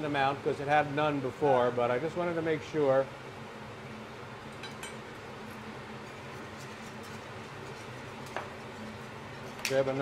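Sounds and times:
kitchen background hum: 0.0s - 10.0s.

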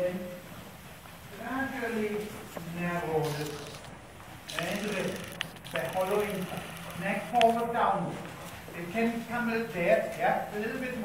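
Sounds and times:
person speaking: 1.3s - 11.0s.

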